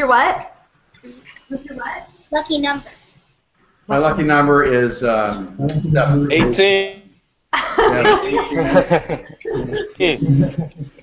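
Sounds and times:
voices over video call: 0.0s - 11.0s.

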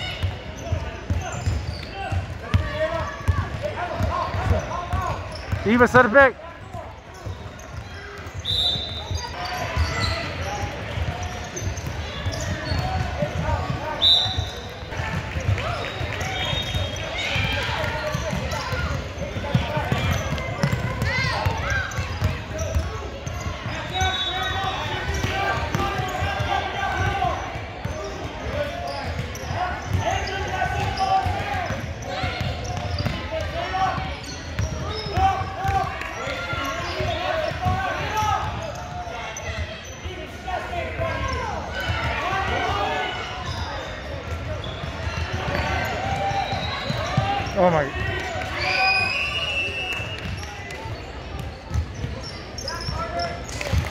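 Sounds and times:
shouts and chatter: 0.0s - 53.9s
basketball bouncing: 14.4s - 23.7s, 30.7s - 33.6s.

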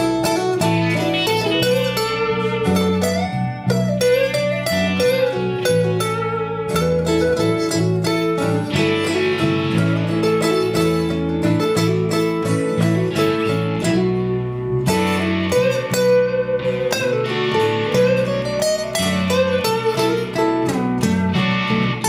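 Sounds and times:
lead guitar with bending notes: 0.0s - 22.0s
strummed acoustic guitar chords: 0.0s - 22.0s.

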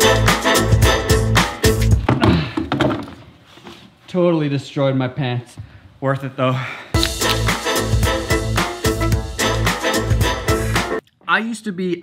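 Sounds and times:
heavy thud on hardwood floor: 2.0s - 3.2s.

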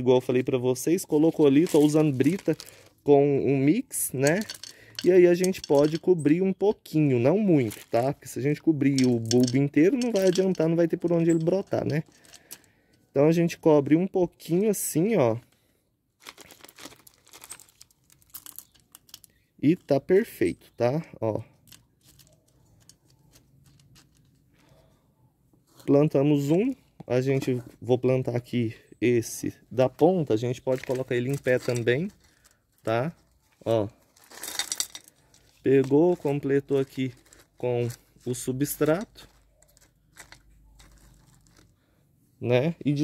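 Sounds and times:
hands crunching potting mix: 1.2s - 3.0s
gravel stones clicking: 1.3s - 2.9s, 4.1s - 6.1s, 8.8s - 12.7s, 16.4s - 19.4s, 38.8s - 41.7s.

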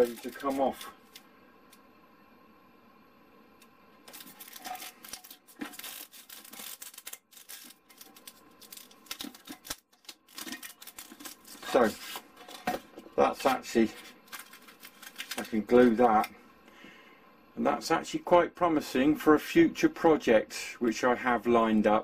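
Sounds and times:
foam sheet scraping against jar: 0.0s - 1.1s, 4.1s - 12.8s, 13.4s - 16.3s.

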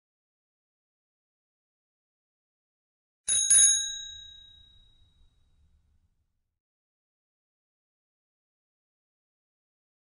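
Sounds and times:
bell-like ding: 3.3s - 5.5s.

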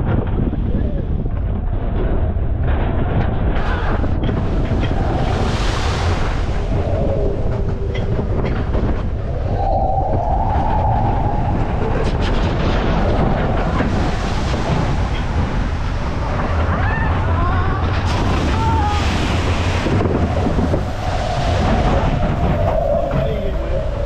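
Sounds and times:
coaster wheels rumbling and clacking: 0.0s - 24.0s
wind buffeting microphone: 0.0s - 24.0s.

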